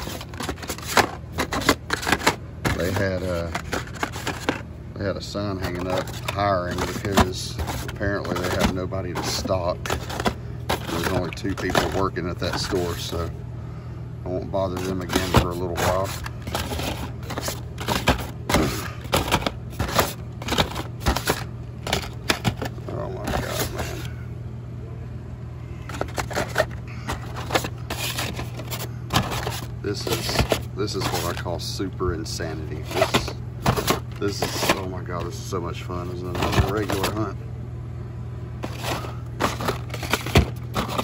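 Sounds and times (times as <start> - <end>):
plastic packs clicking and rattling: 0.0 - 4.7, 5.3 - 13.3, 14.6 - 24.1, 25.9 - 37.3, 38.6 - 41.0
steady low hum: 0.0 - 41.0.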